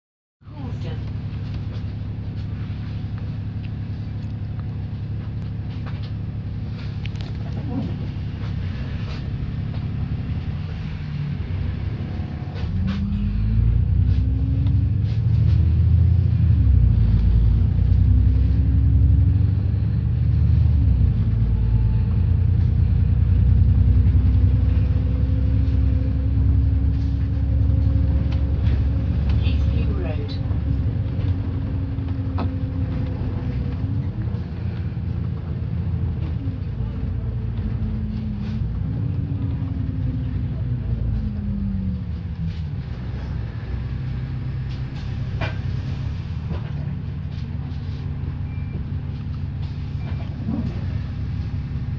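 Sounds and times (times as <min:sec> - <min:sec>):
bus engine rumble: 0:00.4 - 0:51.9
drivetrain whine: 0:00.6 - 0:51.9.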